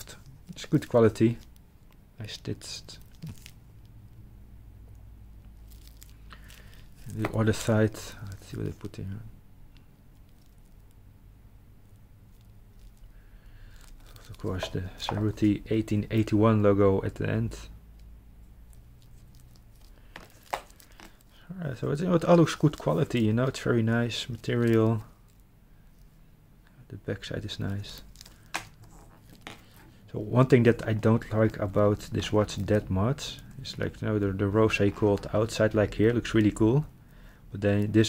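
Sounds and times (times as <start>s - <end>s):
wristwatch handling ticks and rustles: 0.0s - 4.2s, 4.9s - 9.0s, 9.8s - 11.0s, 11.8s - 15.6s, 17.9s - 26.2s, 27.6s - 36.6s
low room hum: 0.0s - 38.0s
plastic film crinkling: 2.2s - 4.2s, 5.4s - 8.8s, 10.1s - 11.0s, 11.8s - 16.4s, 17.9s - 26.2s, 27.3s - 36.6s.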